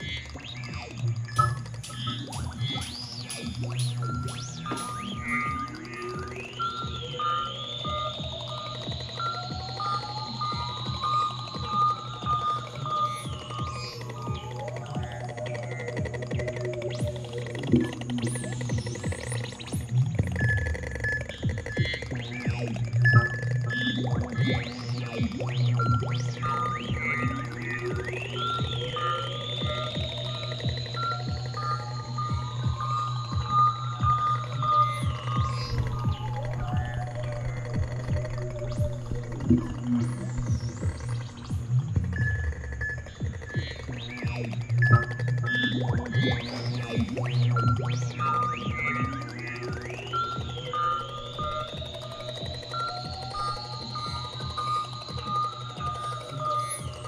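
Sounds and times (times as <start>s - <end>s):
low synthesizer drone: 0.0s - 57.0s
rising synthesizer pitch sweep: 0.0s - 57.0s.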